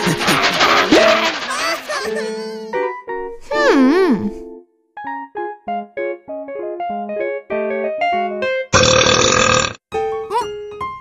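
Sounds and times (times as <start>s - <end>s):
loud cartoon burp: 8.8s - 9.8s.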